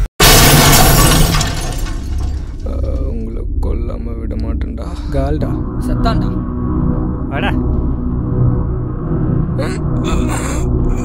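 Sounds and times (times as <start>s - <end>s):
loud crash: 0.2s - 2.7s
low rumble: 0.3s - 11.0s.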